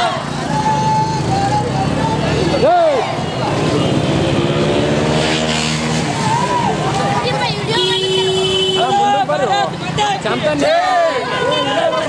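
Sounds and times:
people calling: 0.0s - 5.0s, 5.8s - 12.0s.

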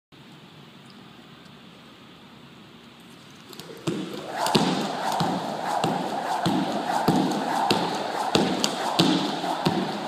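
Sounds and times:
quiet room hiss: 0.2s - 6.1s
jump rope slapping the floor: 3.5s - 10.0s.

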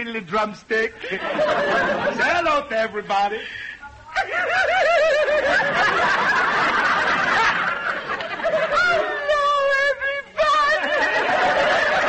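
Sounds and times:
rhythmic ha-ha-ha laugh: 1.0s - 2.3s, 4.2s - 9.2s, 10.6s - 12.0s
audience laughing: 1.0s - 2.5s, 4.2s - 9.6s, 10.5s - 12.0s.

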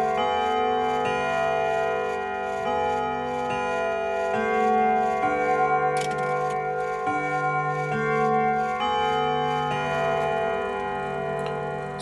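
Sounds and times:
slow chime-like intro music: 0.0s - 12.0s.

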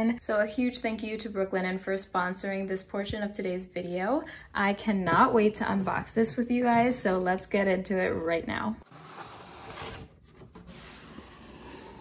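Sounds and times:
cardboard box rubbing and scraping: 8.8s - 12.0s.

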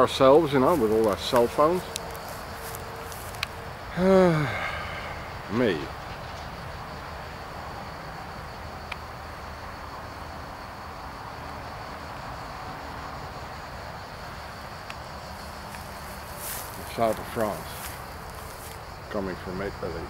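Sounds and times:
distant motorway traffic drone: 0.0s - 20.0s
insects chirring: 0.0s - 20.0s.

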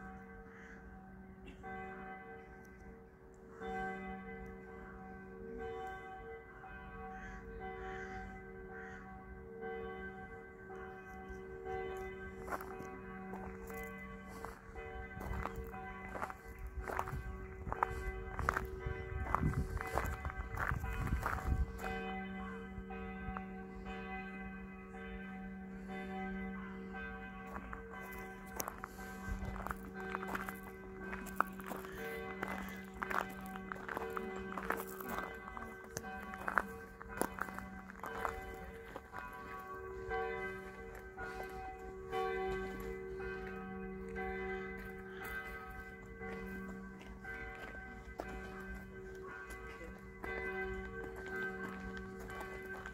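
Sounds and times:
bells ringing: 0.0s - 52.9s
footsteps: 11.8s - 24.2s, 27.0s - 52.9s.

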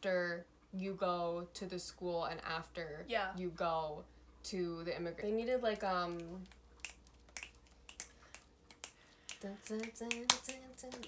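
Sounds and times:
finger snaps: 6.2s - 11.0s.

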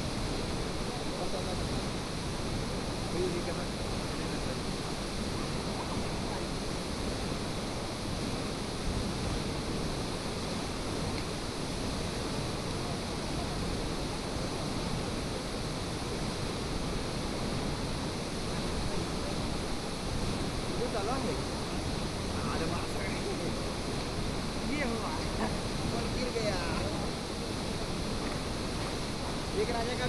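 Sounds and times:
waterfall rushing: 0.0s - 30.0s.

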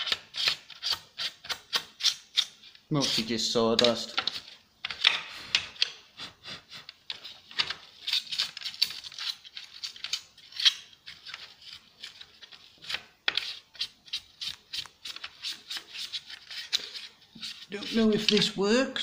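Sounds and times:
sponge scrubbing: 13.4s - 18.6s.

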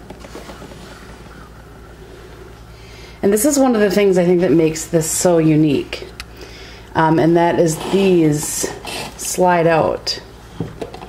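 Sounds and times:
low hum: 0.0s - 10.6s.

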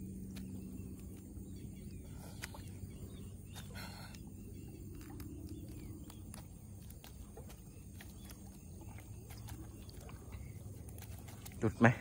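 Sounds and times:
low steady rumble: 0.0s - 12.0s
water movement: 0.0s - 12.0s.

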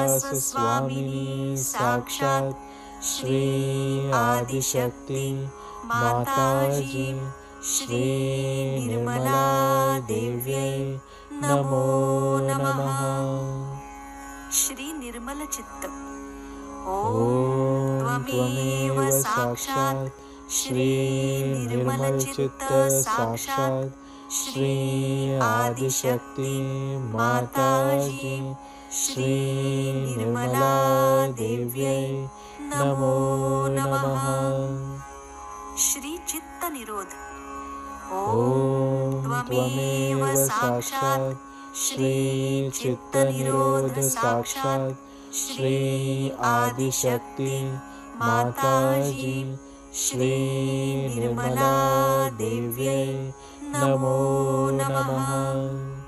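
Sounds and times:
person singing mantras: 0.0s - 13.9s, 16.8s - 35.2s, 38.1s - 56.0s.

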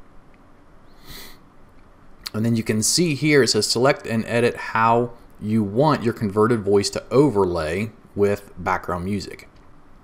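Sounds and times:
person breathing at microphone: 0.9s - 1.4s.

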